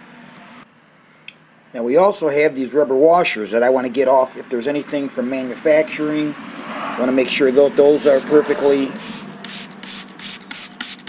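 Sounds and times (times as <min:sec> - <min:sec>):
rag scrubbing rubber washer: 0:08.0 - 0:11.0.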